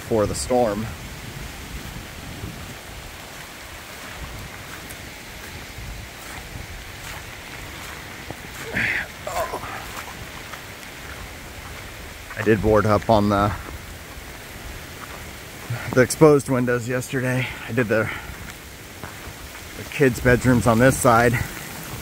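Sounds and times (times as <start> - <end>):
wind on microphone: 0.0 - 16.0
steady rain falling: 0.0 - 22.0.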